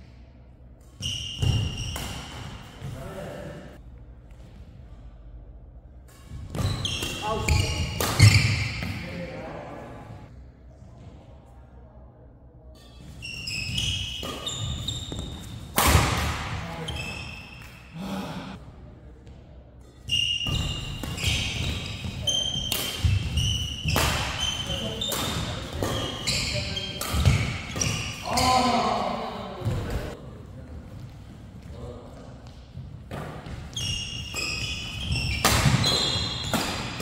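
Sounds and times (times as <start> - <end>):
shoes squeaking on court: 1.0 - 2.9, 6.3 - 9.0, 12.8 - 17.9, 20.1 - 28.9, 32.4 - 37.0
rackets smacking shuttlecock: 22.5 - 28.3, 35.0 - 37.0.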